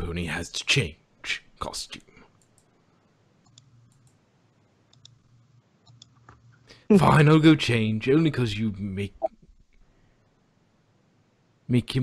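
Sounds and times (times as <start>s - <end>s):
faint low hum: 0.0s - 12.0s
faint short clicks: 4.9s - 5.2s.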